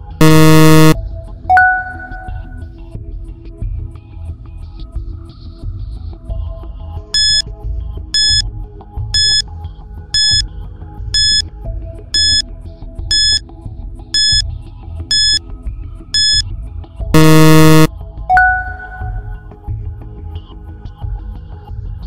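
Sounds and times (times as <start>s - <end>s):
loud low buzzer: 0.0s - 1.0s, 7.2s - 7.4s, 8.2s - 8.4s, 9.2s - 9.4s, 10.2s - 10.4s, 11.2s - 11.4s, 12.2s - 12.4s, 13.1s - 13.4s, 14.2s - 14.4s, 15.1s - 15.4s, 16.2s - 16.4s, 17.2s - 17.9s
countdown timer beeps: 0.0s - 2.6s, 7.2s - 7.4s, 8.2s - 8.4s, 9.2s - 9.4s, 10.2s - 10.4s, 11.2s - 11.4s, 12.2s - 12.4s, 13.1s - 13.4s, 14.2s - 14.4s, 15.1s - 15.4s, 16.2s - 16.4s, 17.2s - 19.3s.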